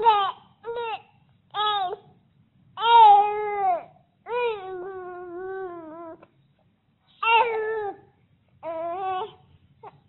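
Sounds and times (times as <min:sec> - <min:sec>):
infant crying: 0:00.0 - 0:02.1, 0:02.8 - 0:06.2, 0:07.2 - 0:08.0, 0:08.6 - 0:10.0.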